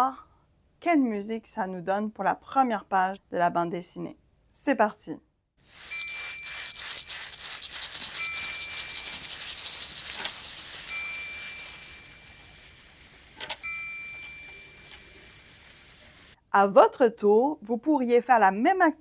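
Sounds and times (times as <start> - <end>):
sand blocks rubbing: 5.6 - 16.4
tambourine: 5.7 - 15.4
maracas rattling: 5.7 - 16.4
triangle ringing: 5.8 - 6.9, 8.0 - 15.8.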